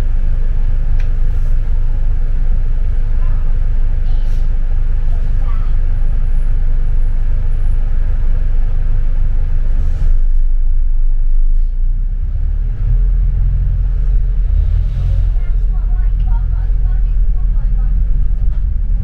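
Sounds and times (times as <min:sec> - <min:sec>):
bus engine rumbling: 0:00.0 - 0:19.0.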